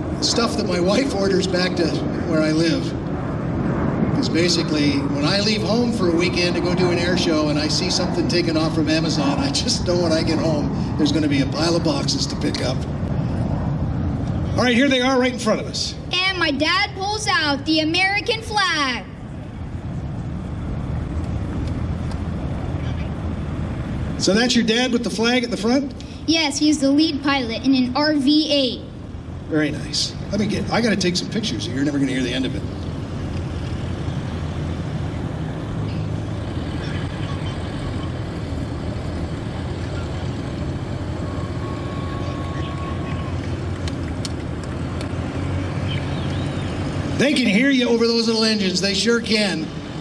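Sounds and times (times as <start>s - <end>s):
propeller plane engines droning: 0.0s - 50.0s.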